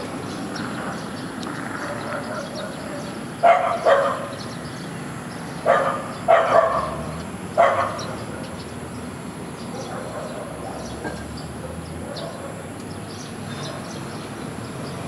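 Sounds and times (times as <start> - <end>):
dog barking: 1.7 - 4.4, 5.6 - 8.5, 9.7 - 12.7, 13.6 - 14.0.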